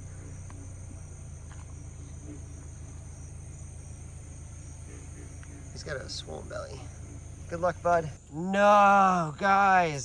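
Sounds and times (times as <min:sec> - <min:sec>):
crickets chirping: 0:00.0 - 0:10.0
low steady hum: 0:00.0 - 0:10.0.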